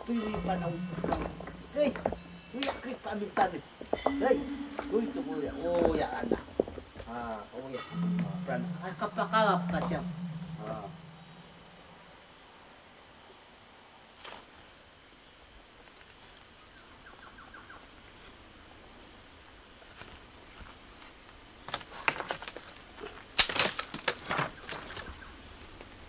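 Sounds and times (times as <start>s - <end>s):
pulsing insect chorus: 0.0s - 12.1s
short pitched cry: 7.8s - 11.8s.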